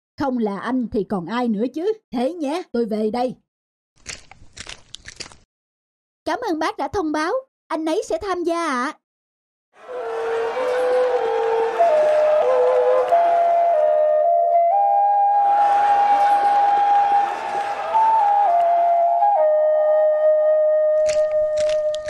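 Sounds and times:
bamboo flute slow melody: 0:09.8 - 0:21.3.

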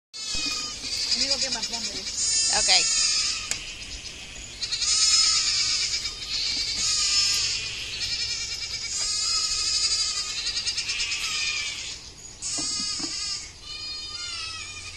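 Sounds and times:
goat bleating in bucket: 0:00.2 - 0:03.7, 0:04.6 - 0:14.9.

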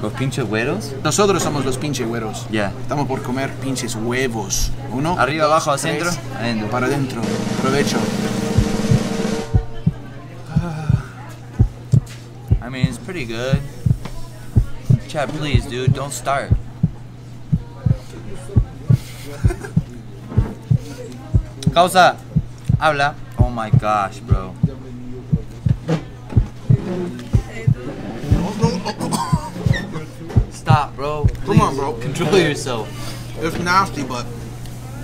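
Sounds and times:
steady low hum: 0:00.0 - 0:35.0
voice: 0:06.6 - 0:16.8, 0:22.8 - 0:32.6
heartbeat-like thumps: 0:07.2 - 0:31.8
heavy low drum beats: 0:07.2 - 0:31.8.

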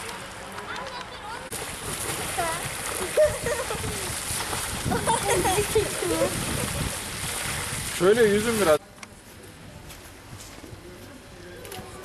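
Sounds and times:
water splashing into pool: 0:00.0 - 0:08.8.

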